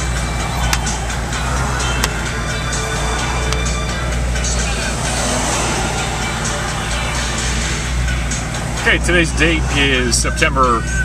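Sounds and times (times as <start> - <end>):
car engine idling from inside: 0.0 - 11.0.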